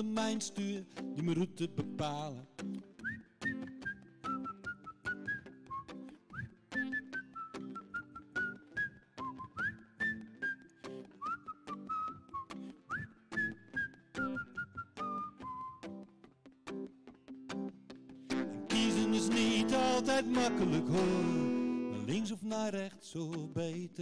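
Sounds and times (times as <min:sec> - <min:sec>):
strummed acoustic guitar: 0:00.0 - 0:24.0
man whistling a melody: 0:03.0 - 0:16.0, 0:18.7 - 0:22.2.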